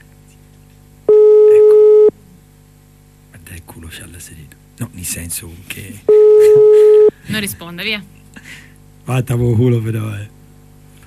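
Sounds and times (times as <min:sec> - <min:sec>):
telephone ringing tone: 0:01.1 - 0:02.1, 0:06.1 - 0:07.1.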